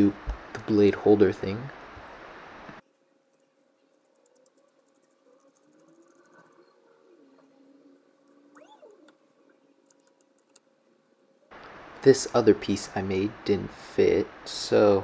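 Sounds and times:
faint high squeaks and ticks: 0:03.3 - 0:10.6.

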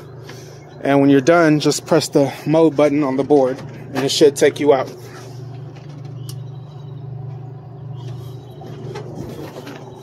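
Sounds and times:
vending machine humming: 0:00.0 - 0:10.0.

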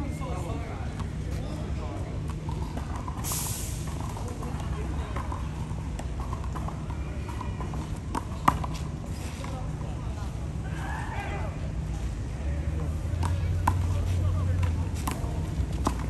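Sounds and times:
faint distant voices: 0:00.0 - 0:16.0.

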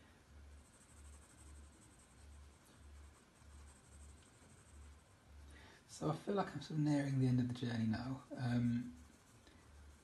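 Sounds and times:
pencil scratching on paper: 0:00.5 - 0:05.2, 0:08.3 - 0:10.0.

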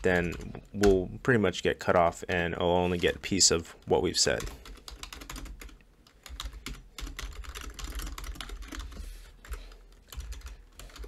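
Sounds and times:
typing on keyboard: 0:04.3 - 0:11.0.

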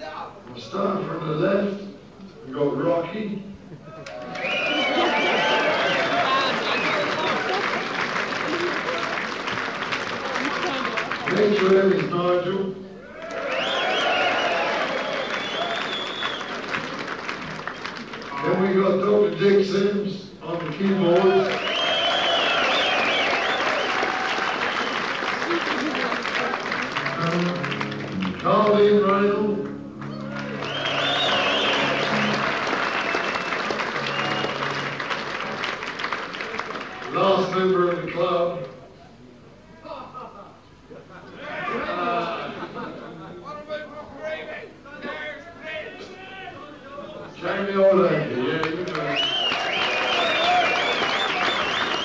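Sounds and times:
audience applauding and cheering: 0:03.9 - 0:12.1, 0:13.0 - 0:18.9, 0:20.6 - 0:37.5, 0:48.4 - 0:52.0
shrill whistles: 0:04.3 - 0:07.4, 0:13.4 - 0:16.7, 0:21.5 - 0:25.2, 0:30.1 - 0:34.8, 0:49.1 - 0:52.0.

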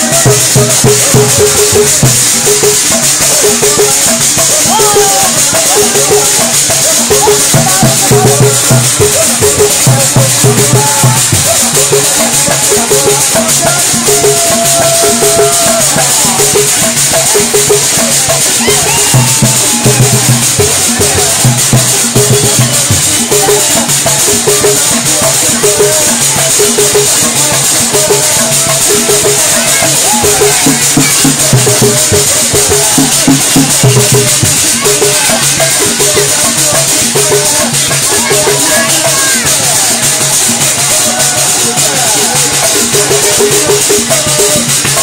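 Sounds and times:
driving drum beat: 0:00.0 - 0:45.0
shaker rattle: 0:00.0 - 0:45.0
voices singing or calling: 0:00.0 - 0:45.0.

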